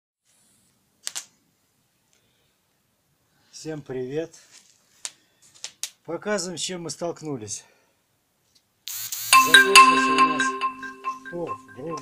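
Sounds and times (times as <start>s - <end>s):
faint background hiss: 0.2s - 12.0s.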